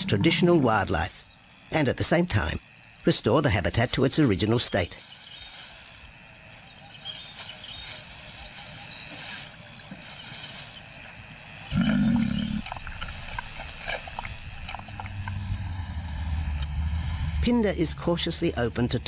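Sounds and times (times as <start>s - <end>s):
bush ambience: 0.0s - 19.0s
lion growling: 11.7s - 13.1s
low engine hum: 12.6s - 19.0s.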